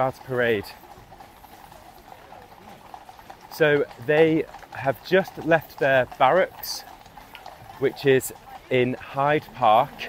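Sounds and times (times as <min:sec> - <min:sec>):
horse hooves on road: 0:00.0 - 0:10.0.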